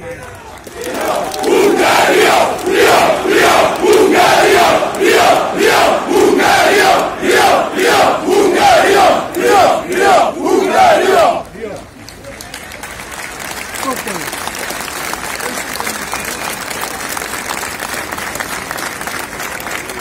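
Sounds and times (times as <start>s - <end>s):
crowd chanting in unison: 0.8s - 11.5s.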